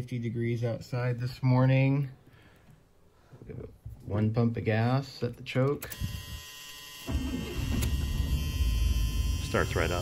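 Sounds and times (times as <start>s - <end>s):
car engine starting and idling: 7.0s - 10.0s.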